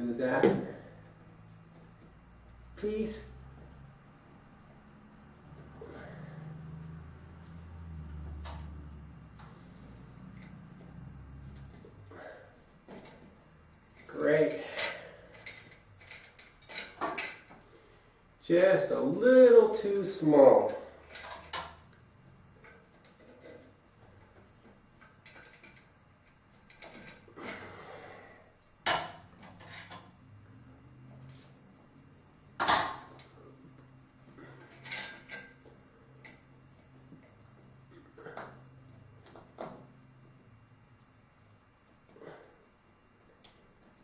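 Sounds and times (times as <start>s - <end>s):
metal chain clinking: 13.9s - 17.5s, 34.4s - 35.6s.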